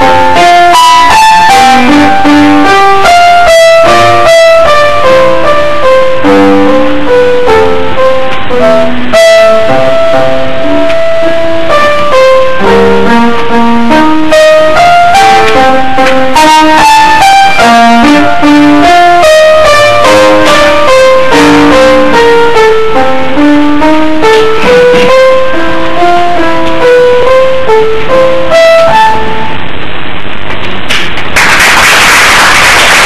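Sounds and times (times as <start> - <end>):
grand piano melody: 0.0 - 31.4.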